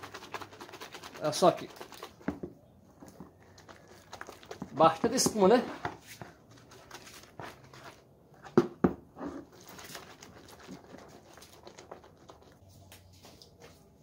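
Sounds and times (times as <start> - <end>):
splashing and squelching: 3.3 - 5.2.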